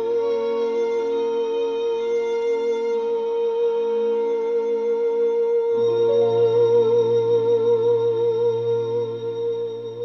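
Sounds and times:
low bass note: 5.8 - 10.0.

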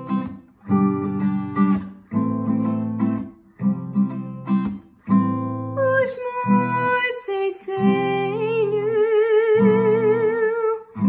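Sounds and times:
acoustic guitar strumming: 0.0 - 11.0
girl singing with vibrato: 5.7 - 11.0.

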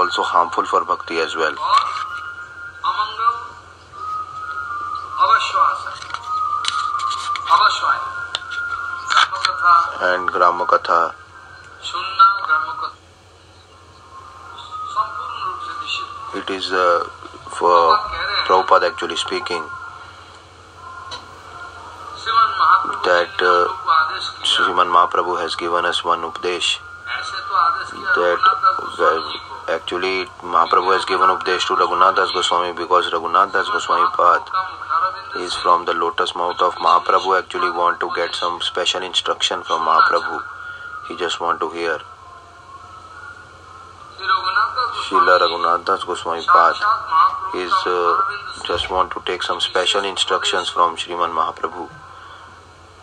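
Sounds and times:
background hiss: 0.0 - 53.0
low electrical hum: 0.0 - 53.0.

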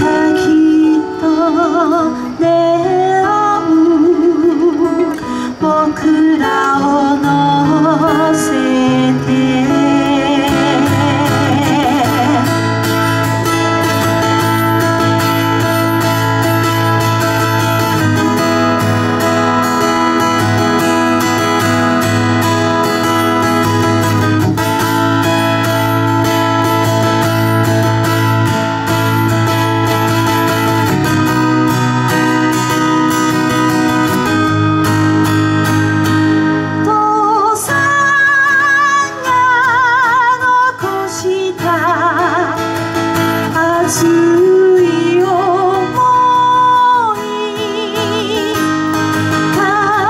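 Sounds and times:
woman singing: 0.0 - 18.4, 36.8 - 50.0
acoustic guitar strummed: 0.0 - 50.0.

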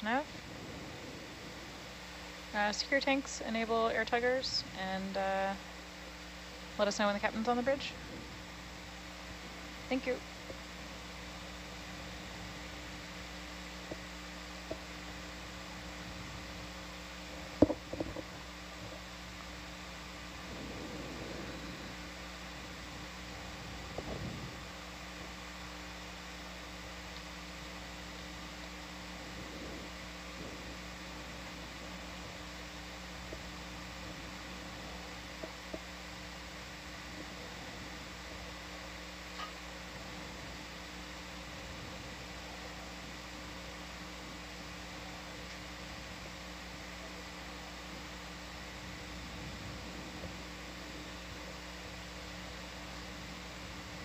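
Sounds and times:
faint steady tones: 0.0 - 54.0
steady hum and hiss: 0.0 - 54.0.

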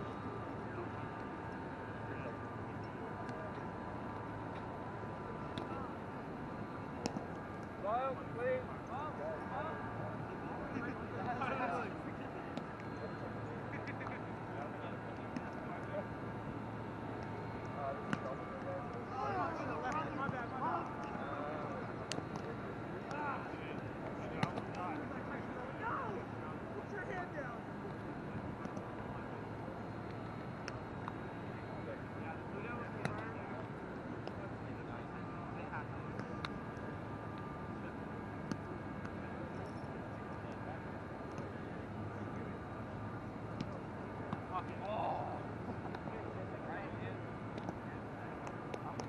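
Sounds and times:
steady background hum: 0.0 - 49.0
ball slaps: 24.3 - 24.8.

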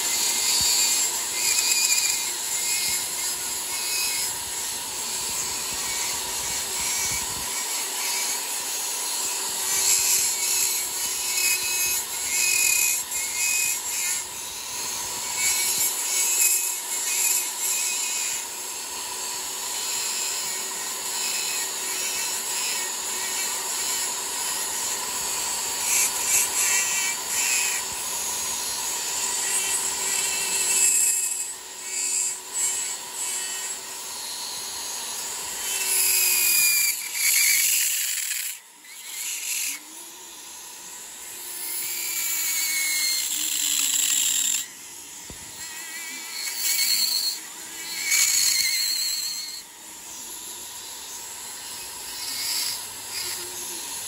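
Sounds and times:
rasping grinding: 0.0 - 54.0
rotary tool motor whine: 0.0 - 54.0.

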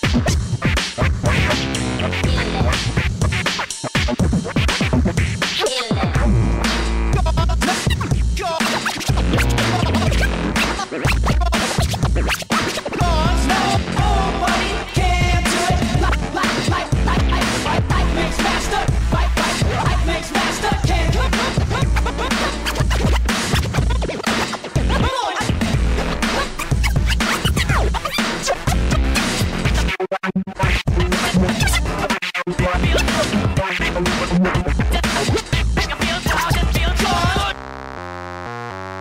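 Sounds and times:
heavy bass beat: 0.0 - 29.9, 30.6 - 37.6
turntable scratching: 0.0 - 39.0.

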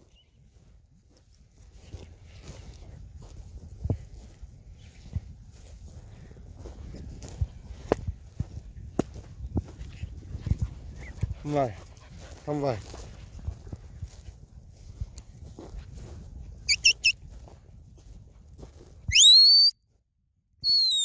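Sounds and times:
footsteps on grass: 0.0 - 19.1.

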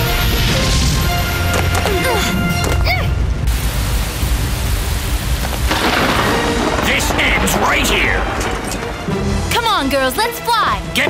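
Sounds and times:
background music: 0.0 - 3.5, 4.9 - 11.0
heavy rumble: 3.2 - 9.6.

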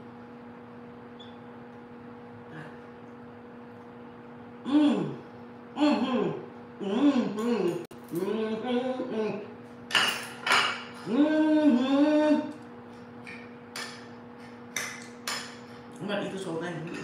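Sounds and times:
woman humming while eating: 4.6 - 9.6, 11.0 - 12.6.

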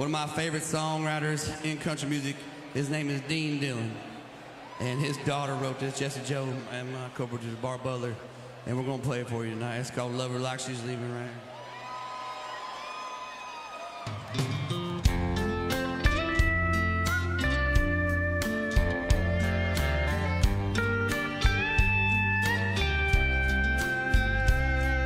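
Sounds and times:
bass guitar: 14.4 - 25.0
drums steady beat: 14.4 - 25.0
steel guitar melody: 14.5 - 25.0.

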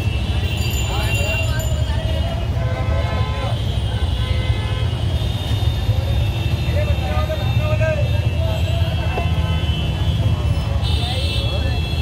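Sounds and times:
crowd voices: 0.0 - 4.0, 5.4 - 12.0
traffic engines rumbling: 0.0 - 12.0
vehicle horns honking: 2.4 - 12.0.

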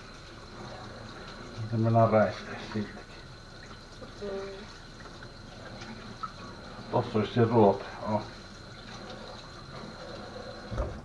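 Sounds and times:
tap running water into sink: 0.0 - 11.0.

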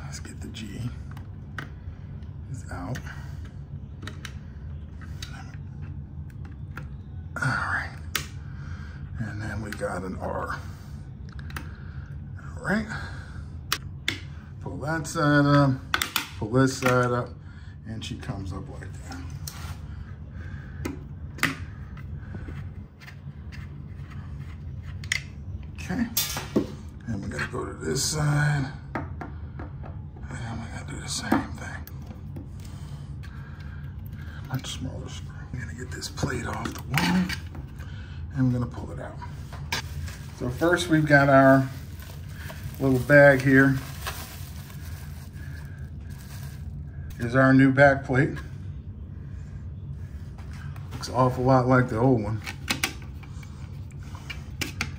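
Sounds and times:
wire handling noises: 0.0 - 7.2, 11.2 - 12.2, 13.6 - 14.6, 18.2 - 27.6, 31.0 - 47.4, 50.3 - 54.9
steady low hum: 0.0 - 54.9
bubble wrap crinkling: 39.8 - 46.8.

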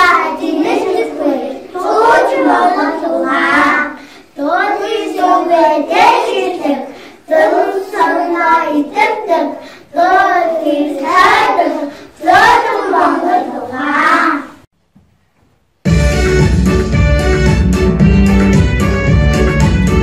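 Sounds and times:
children singing in unison: 0.0 - 14.7.

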